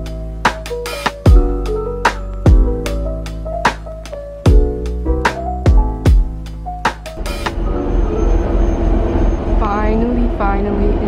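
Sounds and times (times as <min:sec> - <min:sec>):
background music: 0:00.0 - 0:11.0
shuttle bus rumble and rattle: 0:06.7 - 0:11.0.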